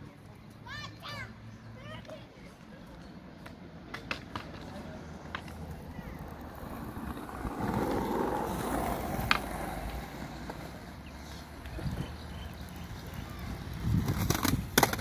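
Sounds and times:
skateboard wheels rolling on concrete: 0:00.0 - 0:15.0
skateboard clacks: 0:02.0 - 0:15.0.

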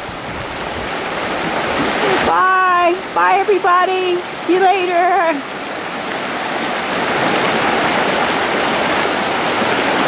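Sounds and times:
water rushing over rocks: 0:00.0 - 0:10.0.

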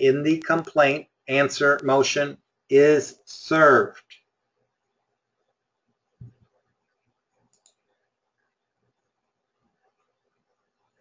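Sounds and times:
computer mouse clicks: 0:06.2 - 0:08.1.

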